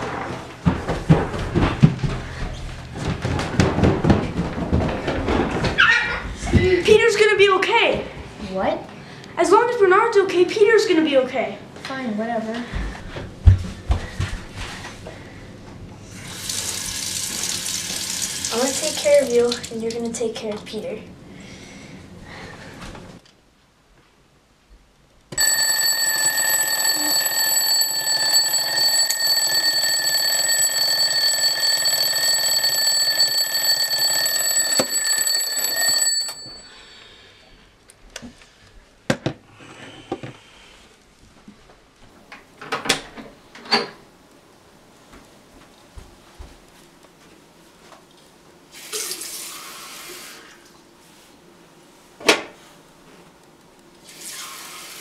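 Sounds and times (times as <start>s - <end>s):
tap running: 25.4s - 36.6s
alarm clock tone: 25.4s - 37.0s.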